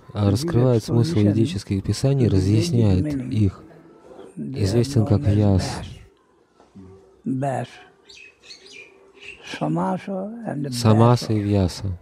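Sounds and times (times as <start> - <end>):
faint high bird chirps: 8.0 - 9.8.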